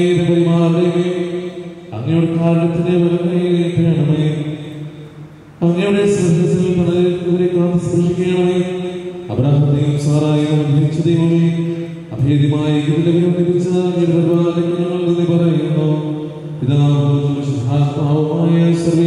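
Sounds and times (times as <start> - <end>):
man chanting a prayer: 0.0 - 5.0, 5.6 - 19.0.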